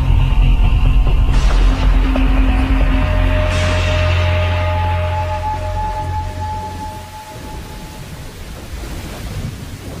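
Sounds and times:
thunder rumbling: 1.0s - 10.0s
rain hissing: 1.4s - 10.0s.

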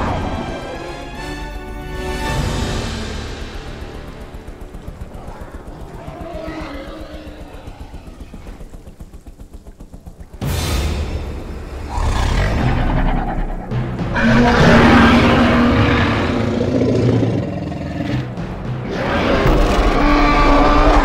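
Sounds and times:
tense film score with low pulse: 0.0s - 21.0s.

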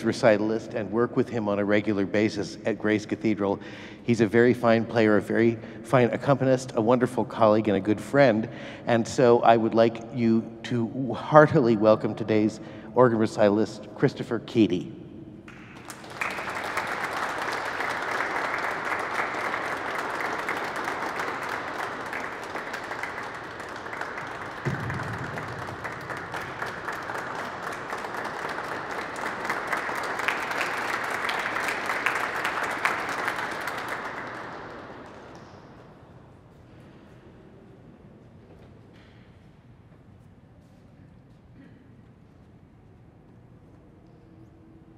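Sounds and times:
audience applauding: 15.5s - 35.4s.

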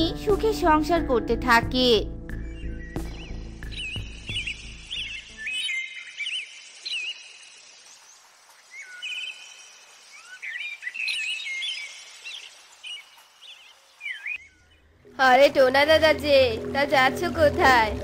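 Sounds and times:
background music: 0.0s - 5.7s, 14.8s - 18.0s
songbird chirps and trills: 0.0s - 18.0s.

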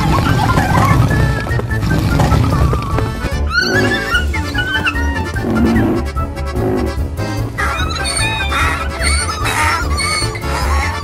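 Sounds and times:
horse whinny: 1.9s - 11.0s.

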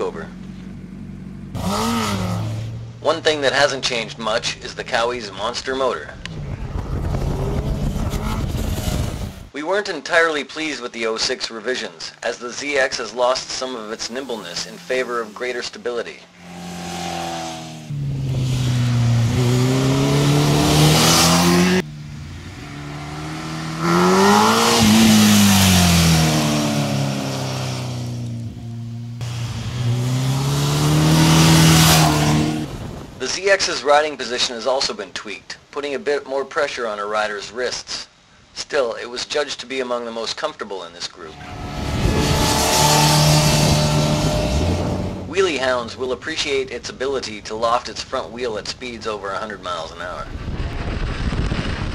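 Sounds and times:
motorcycle engine revving: 0.0s - 4.8s, 6.2s - 9.5s, 16.2s - 33.2s, 41.3s - 45.4s
motorcycle passing by: 6.3s - 9.4s, 16.3s - 33.0s, 41.3s - 45.3s.

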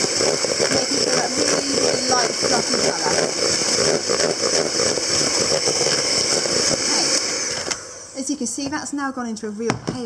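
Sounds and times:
electric hand whisk running: 0.0s - 8.4s.

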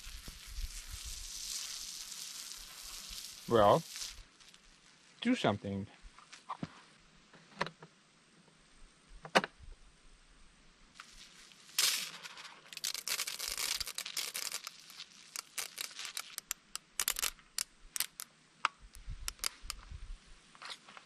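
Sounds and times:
rasping rustle: 11.0s - 17.4s.

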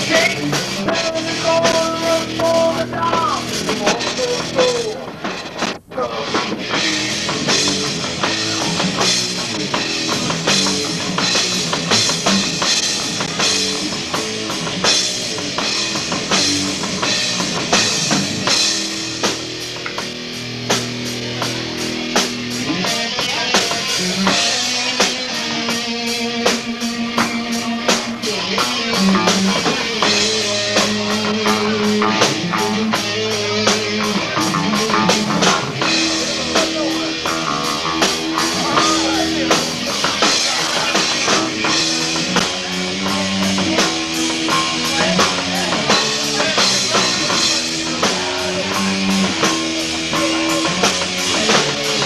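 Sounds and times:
bass guitar: 0.0s - 52.0s
drum kit: 0.0s - 52.0s
electric guitar: 0.0s - 52.0s.

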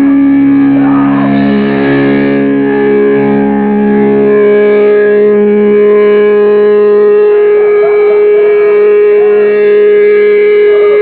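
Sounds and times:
distorted electric guitar chord: 0.0s - 11.0s
steady high tone: 0.0s - 11.0s.

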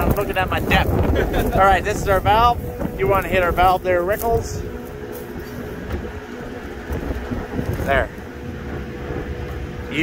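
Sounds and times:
tractor machinery humming: 0.0s - 10.0s
wind on microphone: 0.0s - 10.0s.

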